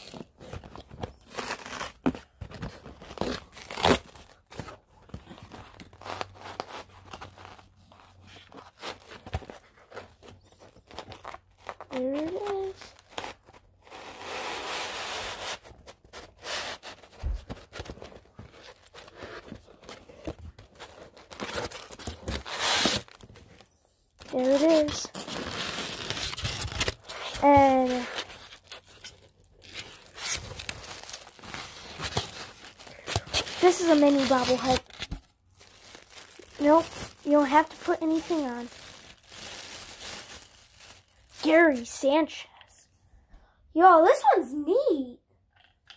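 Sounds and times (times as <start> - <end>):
packaging rustle: 24.2 - 41.8
plastic wrapping crinkling: 24.2 - 42.0.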